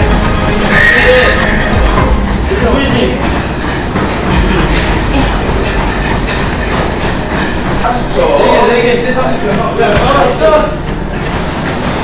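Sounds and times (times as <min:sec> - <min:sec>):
treadmill rumbling and clattering: 0:00.0 - 0:12.0
voices shouting: 0:00.5 - 0:02.9.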